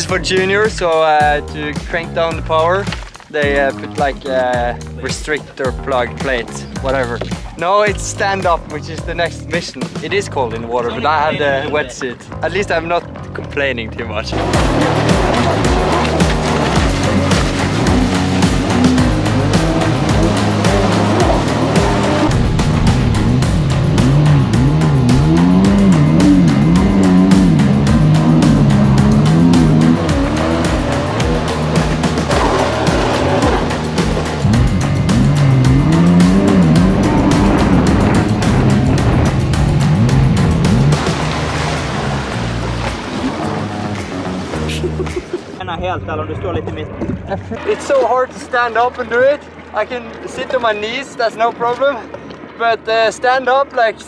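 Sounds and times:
music playing: 0.0 - 46.2
jet ski engine revving: 14.3 - 45.1.

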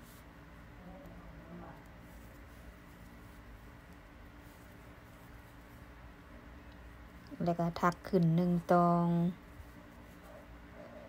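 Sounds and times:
knitting needles and yarn handling: 0.0 - 0.4, 1.0 - 10.5.

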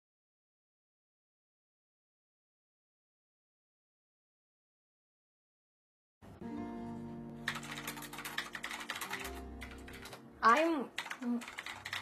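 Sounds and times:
soft background music: 6.2 - 12.0
computer keyboard keys clicking: 7.4 - 10.2, 11.0 - 12.0.

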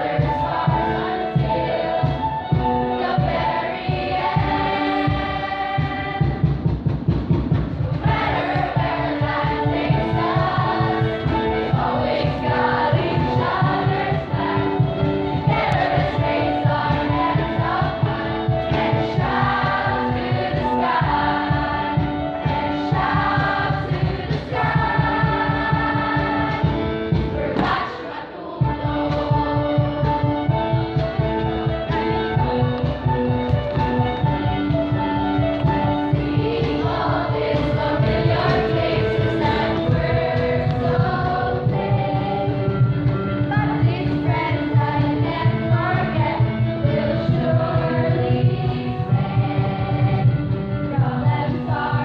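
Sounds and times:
choir singing sustained notes: 0.0 - 6.5, 7.9 - 30.6, 35.8 - 42.6
musical accompaniment: 0.0 - 52.0.

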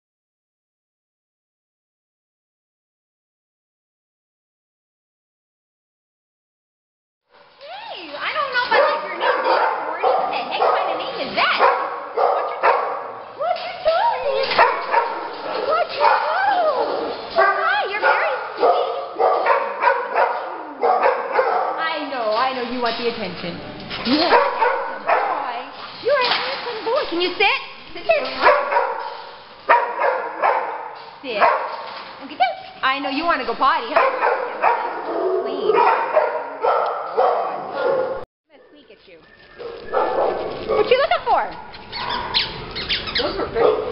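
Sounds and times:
dog barking: 8.5 - 13.2, 14.2 - 22.0, 24.2 - 25.8, 28.1 - 31.9, 33.8 - 38.2, 39.6 - 43.9
dog whining: 41.6 - 43.6.

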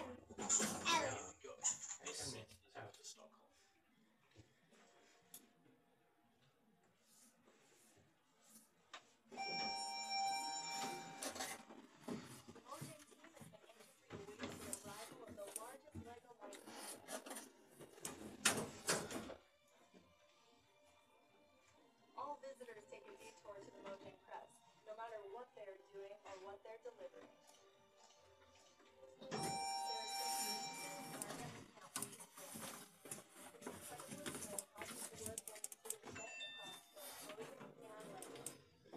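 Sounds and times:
elevator bell ringing: 9.4 - 11.6, 29.3 - 31.3, 36.2 - 36.9.

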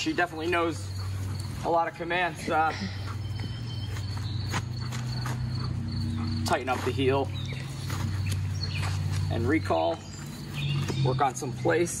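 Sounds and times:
continuous low hum: 0.0 - 12.0
insects chirping: 0.0 - 12.0.

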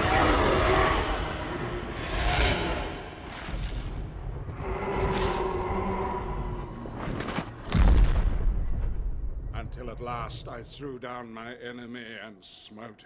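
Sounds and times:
heavy low rumbling booms: 7.6 - 10.8.

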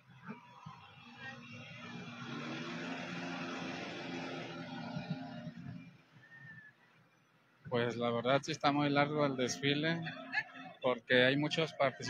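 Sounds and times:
tractor diesel engine passing: 0.4 - 6.3.

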